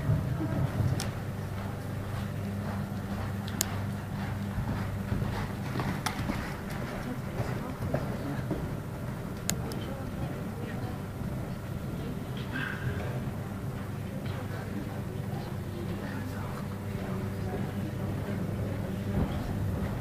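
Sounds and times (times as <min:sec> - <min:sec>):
chatter of spectators: 0:00.0 - 0:04.4, 0:06.5 - 0:20.0
steady low hum: 0:00.0 - 0:20.0.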